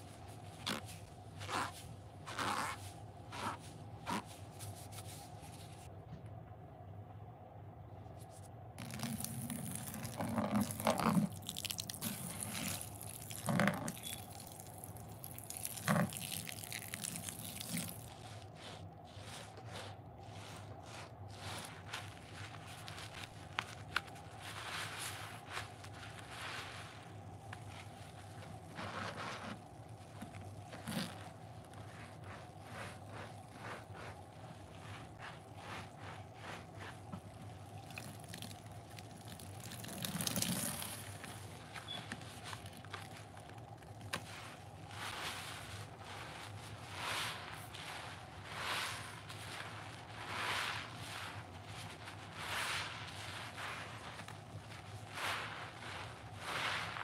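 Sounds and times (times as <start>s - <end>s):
wet squelch of squeezed sponge: 0.0s - 5.9s, 8.2s - 57.0s.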